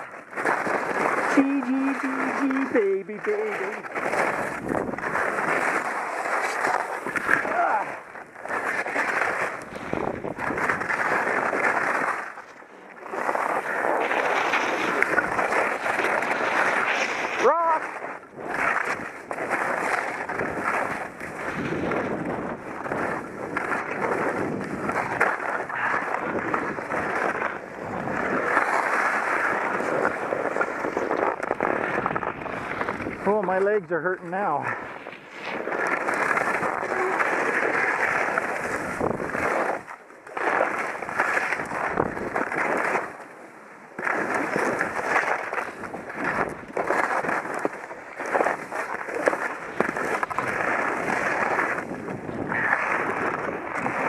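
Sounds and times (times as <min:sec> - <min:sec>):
skis scraping over snow: 0:00.0 - 0:54.0.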